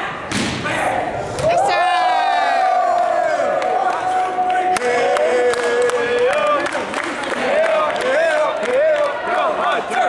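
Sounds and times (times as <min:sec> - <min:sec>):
people yelling and cheering: 0:00.0 - 0:10.0.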